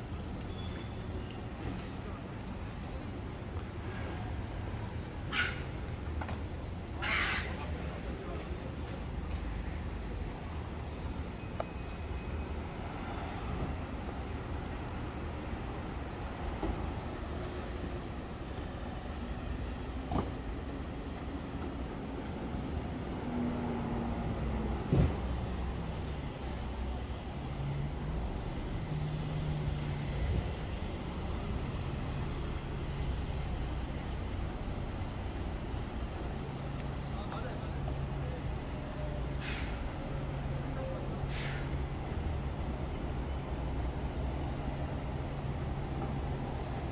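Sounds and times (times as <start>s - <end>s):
street traffic: 0.0s - 46.9s.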